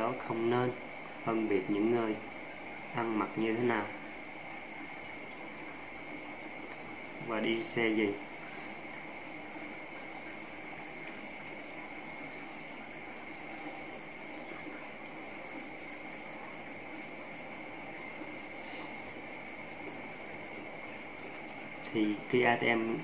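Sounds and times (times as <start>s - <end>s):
steady background hiss: 0.0s - 23.0s.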